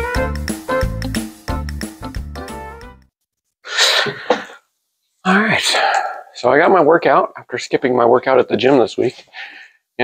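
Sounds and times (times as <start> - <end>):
man's forceful burst of breath: 3.6 - 4.6.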